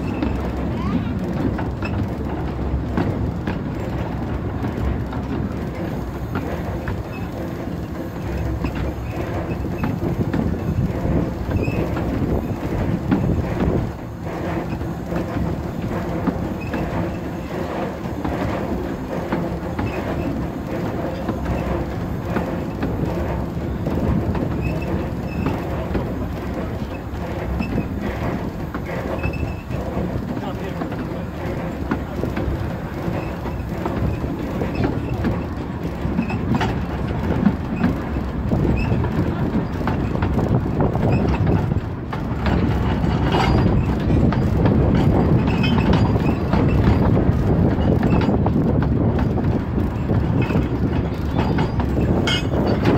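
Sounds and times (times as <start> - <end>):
steam train running: 0.0 - 52.9
wheels clicking over track: 0.0 - 52.9.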